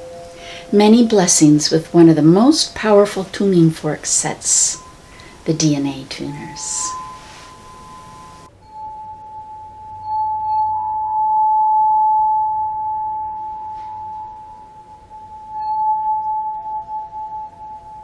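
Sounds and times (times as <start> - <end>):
bell-like ringing tone: 0.0 - 2.1, 3.5 - 18.0
lower ringing tone: 0.0 - 18.0.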